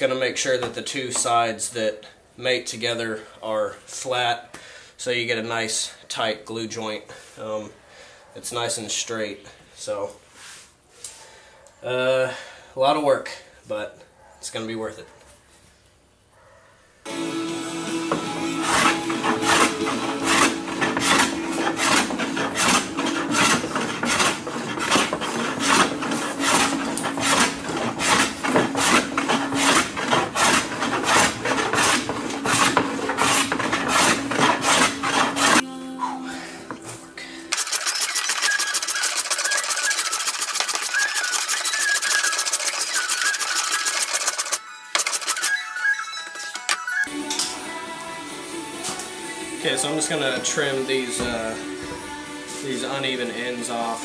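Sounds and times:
background music: 17.1 - 37.6, 44.6 - 54.0
hand plane shaving wood: 18.1 - 35.6, 37.6 - 45.4.

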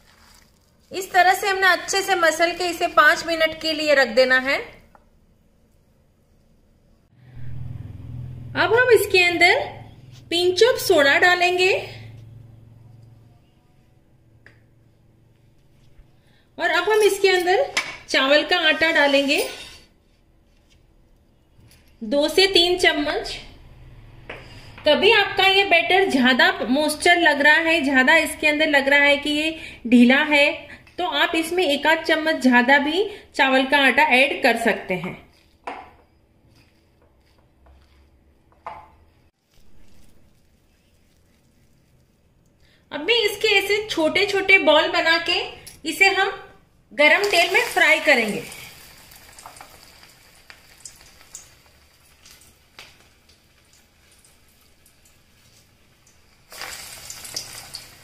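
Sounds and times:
hand mixing batter: 0.0 - 2.8, 36.4 - 38.5, 39.3 - 42.6.

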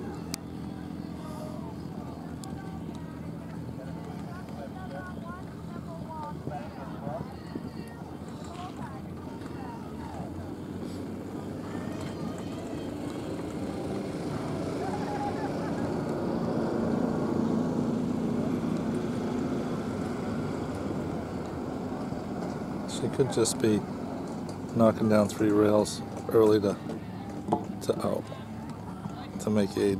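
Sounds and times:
motor vehicle passing: 0.0 - 29.9.

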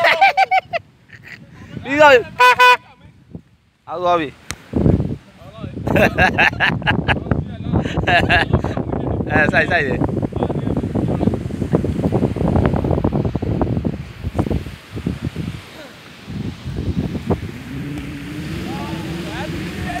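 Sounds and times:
wind buffeting microphone: 0.6 - 20.0.

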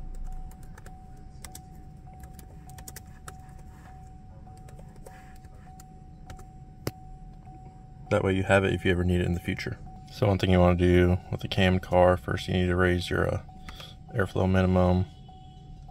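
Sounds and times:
faint high whine: 0.0 - 15.9
low hum: 0.0 - 15.9.

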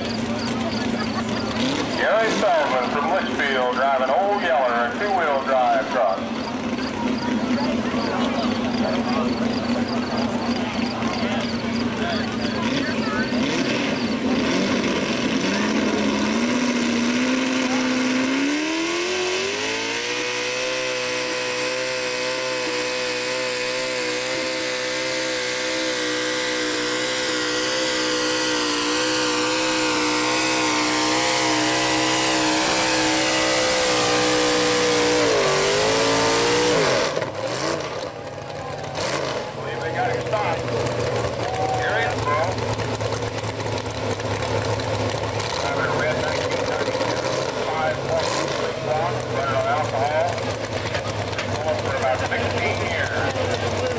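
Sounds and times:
truck engine at full throttle: 0.0 - 53.9.

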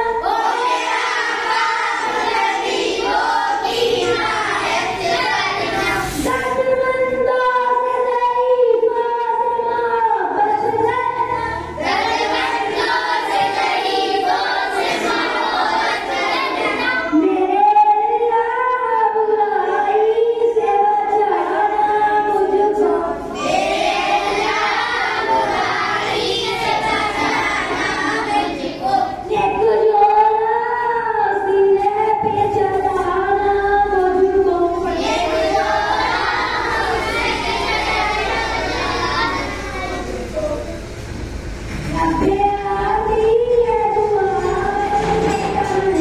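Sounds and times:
children singing together: 0.0 - 40.9, 42.0 - 46.0.

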